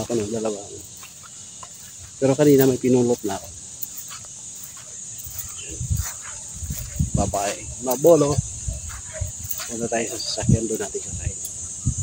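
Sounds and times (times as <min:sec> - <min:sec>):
insects buzzing: 0:00.0 - 0:12.0.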